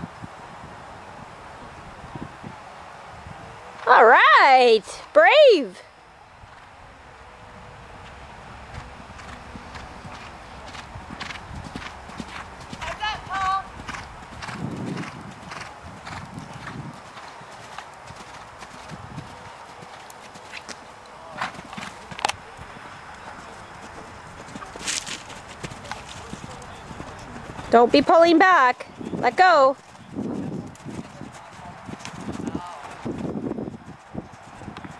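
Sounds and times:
horse hoofbeats cantering: 8.0 - 34.9.

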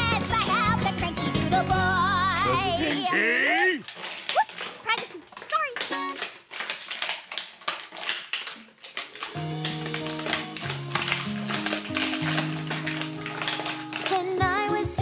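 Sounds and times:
cellophane crinkling: 2.4 - 15.0.

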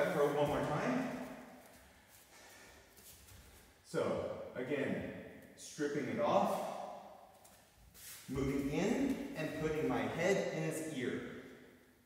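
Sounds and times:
breathing: 2.1 - 3.0.

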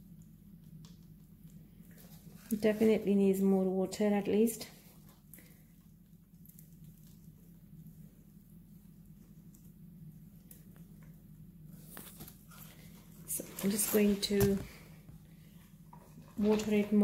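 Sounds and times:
faint steady low hum: 0.0 - 17.0.

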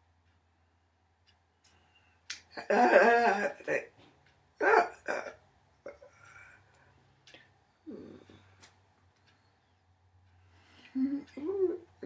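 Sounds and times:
woman's wordless vocal syllables: 11.0 - 12.0.

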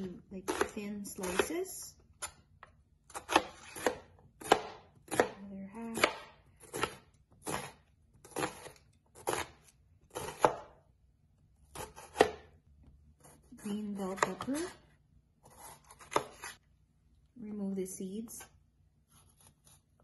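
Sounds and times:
knife slicing onion on wood: 0.4 - 2.4, 3.1 - 10.8, 11.7 - 12.6, 13.2 - 14.8, 15.4 - 16.6, 18.4 - 20.0.

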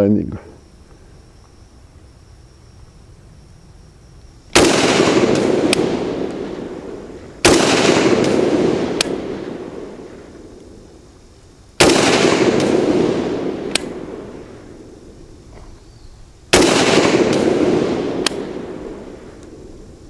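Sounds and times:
rifle shots echoing: 4.5 - 10.9, 11.8 - 15.2, 16.5 - 20.0.

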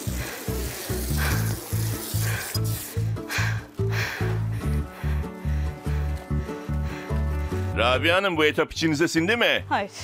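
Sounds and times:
fizzing hiss: 0.0 - 3.2
background music with bass pulse: 0.0 - 10.0.

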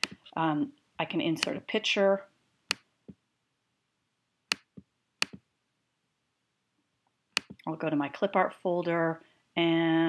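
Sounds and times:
computer mouse clicks: 4.5 - 5.4, 7.4 - 7.7.

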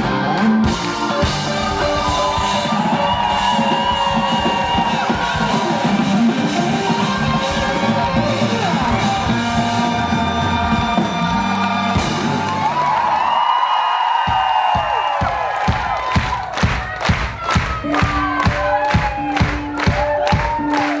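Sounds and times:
crowd whooping and cheering: 0.0 - 21.0.

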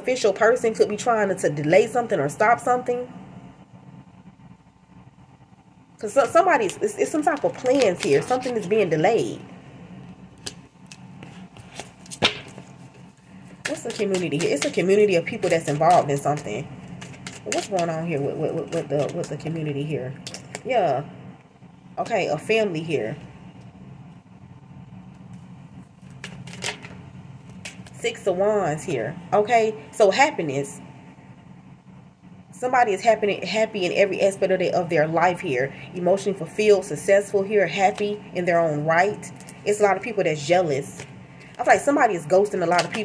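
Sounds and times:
low steady hum: 0.0 - 43.0
cards clicking and brushing: 10.4 - 19.5, 26.0 - 28.0.

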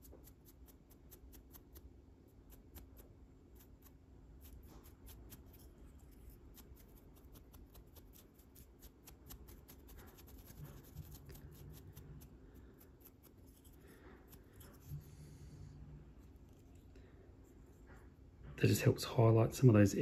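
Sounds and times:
brush scratching on metal model: 0.0 - 17.9.

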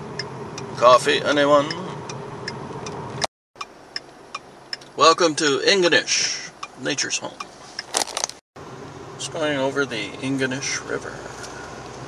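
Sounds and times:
car road noise: 0.0 - 12.0
light regular ticking: 0.1 - 0.7, 1.6 - 5.0, 6.5 - 7.9.

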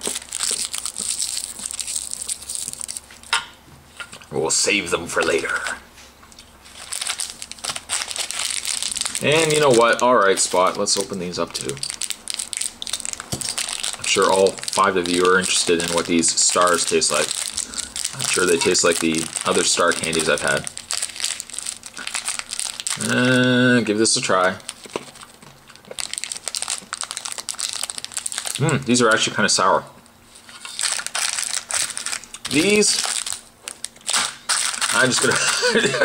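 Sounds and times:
plastic bag crinkling: 0.0 - 3.3, 6.6 - 29.4, 30.3 - 36.0.

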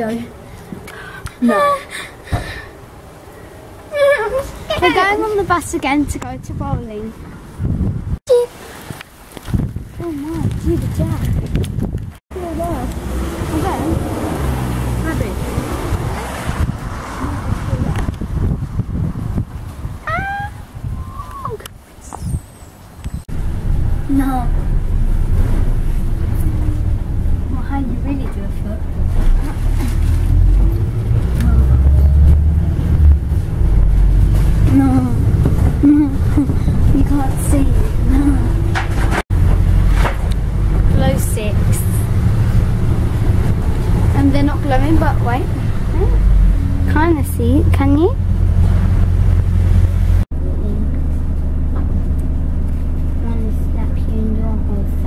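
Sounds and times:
bus engine and road rumble: 0.0 - 55.0
wind buffeting microphone: 4.3 - 50.3.

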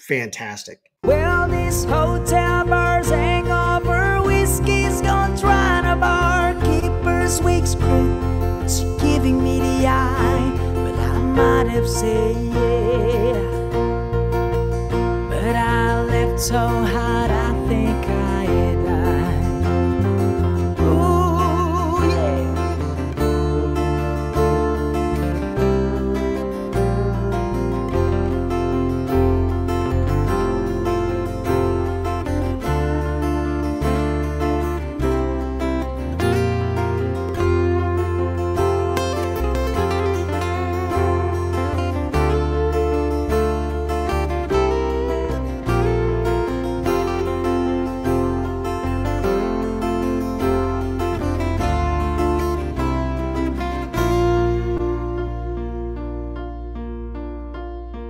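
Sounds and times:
acoustic guitar melody: 1.0 - 58.0.

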